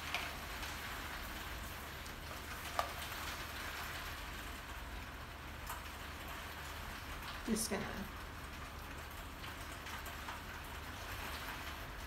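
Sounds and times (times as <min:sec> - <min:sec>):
heavy rain falling: 0:00.0 - 0:12.0.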